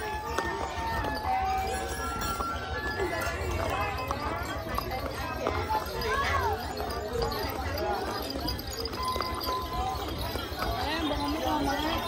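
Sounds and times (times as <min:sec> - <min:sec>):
horse hooves clip-clopping on pavement: 0:00.0 - 0:12.0
people chattering: 0:00.0 - 0:12.0.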